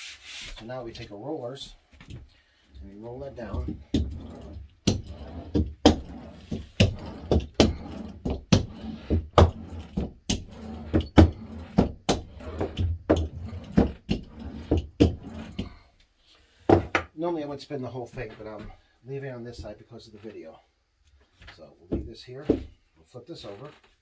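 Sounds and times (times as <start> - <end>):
hand roller rumbling: 2.8 - 15.9
roller knocking: 2.9 - 15.8.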